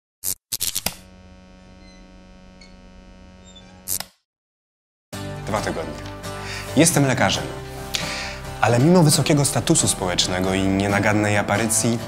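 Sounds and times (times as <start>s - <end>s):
crackling noise bursts: 0.2s - 4.2s
low electrical hum: 1.0s - 3.6s.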